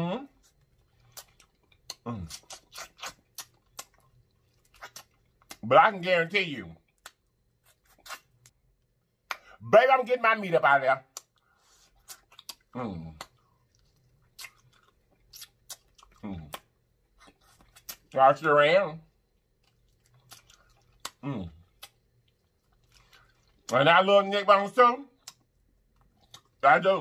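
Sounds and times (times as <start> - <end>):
wet eating clicks and smacks: 0.5 - 5.7, 6.8 - 9.6, 11.0 - 18.2, 19.2 - 23.9, 25.1 - 26.7
sucking meat off bone: 1.1 - 4.0.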